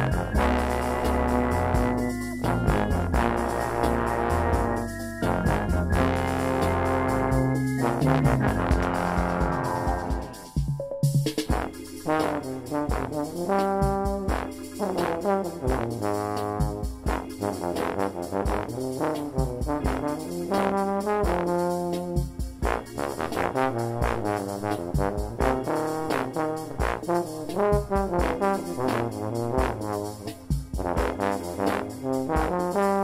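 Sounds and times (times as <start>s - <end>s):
low brass blues line: 0.0s - 10.6s, 11.4s - 33.0s
organ rhythm accompaniment: 0.0s - 33.0s.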